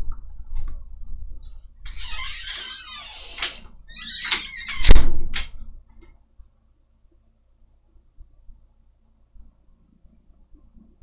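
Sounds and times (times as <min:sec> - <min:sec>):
door swishing open: 0:01.9 - 0:05.6.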